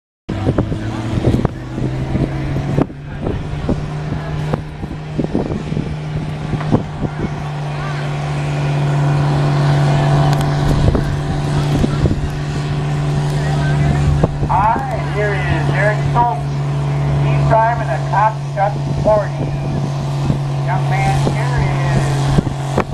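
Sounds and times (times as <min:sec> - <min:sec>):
tractor engine under load: 0:00.3 - 0:22.9
person speaking: 0:14.5 - 0:16.6.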